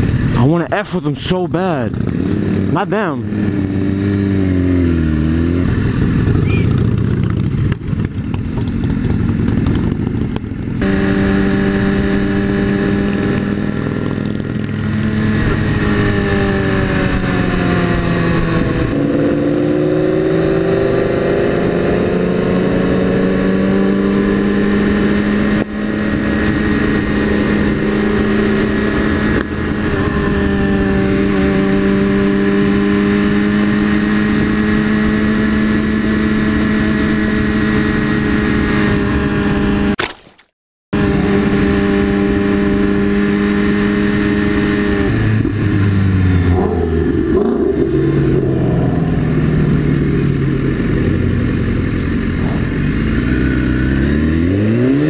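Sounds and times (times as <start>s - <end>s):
motorcycle engine cruising: 0.0s - 40.0s, 41.0s - 55.0s
traffic: 0.0s - 40.0s, 41.0s - 55.0s
wind rush: 41.0s - 52.6s.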